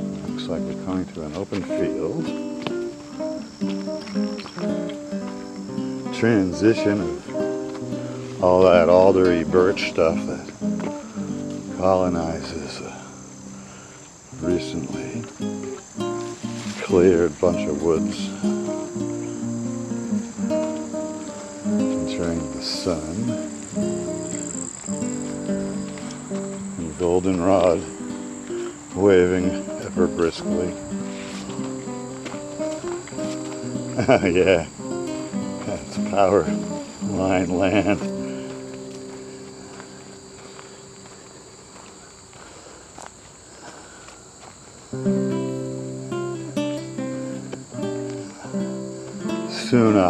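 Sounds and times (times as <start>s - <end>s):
music of held notes: 0.0s - 41.5s, 45.0s - 50.0s
acoustic guitar: 0.0s - 42.5s, 43.6s - 50.0s
crickets trilling: 0.0s - 50.0s
insects chorus: 0.0s - 50.0s.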